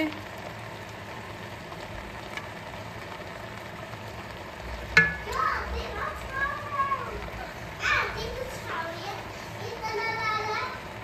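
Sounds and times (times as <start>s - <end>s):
food sizzling in a pan: 0.0s - 11.0s.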